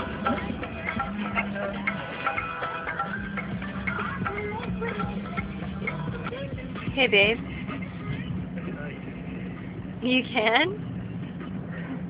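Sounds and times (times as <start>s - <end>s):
car engine hum from inside: 0.0s - 12.0s.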